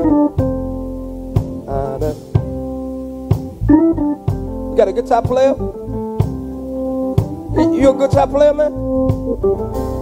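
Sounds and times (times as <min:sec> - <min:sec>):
organ and keyboard chords: 0:00.0 - 0:10.0
drum hits: 0:01.3 - 0:10.0.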